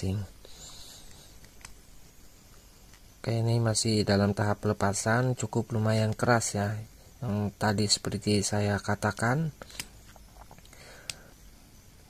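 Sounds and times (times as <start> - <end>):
hot air station hissing: 0.0 - 5.6, 6.3 - 12.0.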